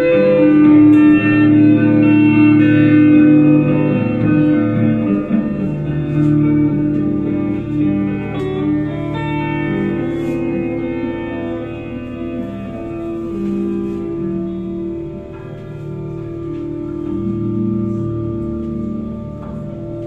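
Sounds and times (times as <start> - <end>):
electric guitar sustained notes: 0.0 - 20.0.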